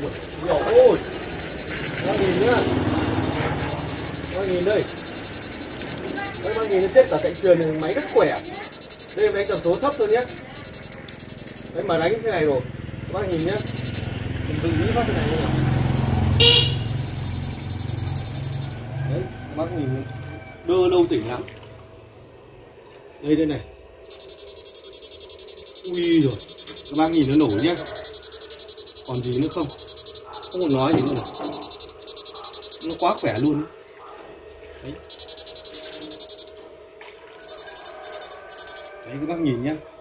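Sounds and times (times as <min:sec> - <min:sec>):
high-pitched toot: 0:00.0 - 0:11.8, 0:13.3 - 0:14.2, 0:15.1 - 0:19.0, 0:24.1 - 0:33.6, 0:37.4 - 0:39.0
electronic fish shocker buzzing: 0:00.0 - 0:12.0, 0:13.2 - 0:19.0, 0:24.0 - 0:33.6, 0:35.0 - 0:36.6, 0:37.4 - 0:39.0.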